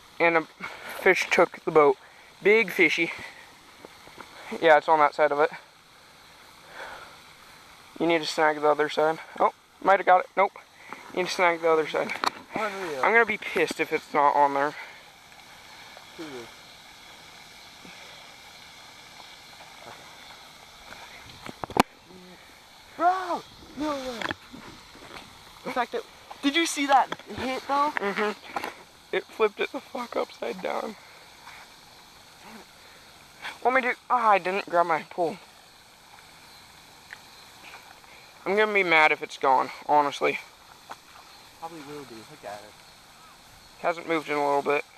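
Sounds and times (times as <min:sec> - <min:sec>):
faint outdoor hiss: 0:00.0 - 0:44.9.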